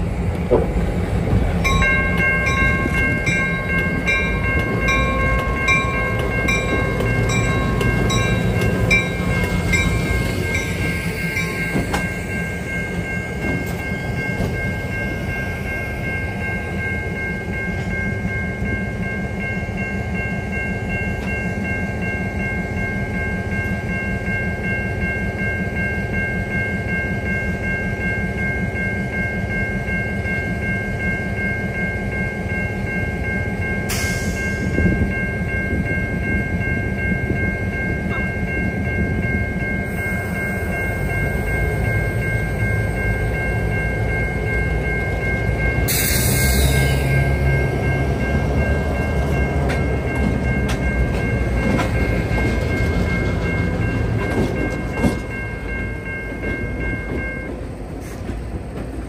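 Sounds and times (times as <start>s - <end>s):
diesel locomotives rumbling: 0.0s - 59.0s
locomotive bell ringing: 0.0s - 59.0s.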